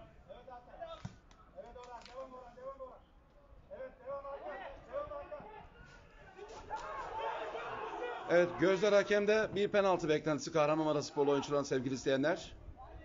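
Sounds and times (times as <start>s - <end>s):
voices shouting and calling: 3.7s - 9.2s.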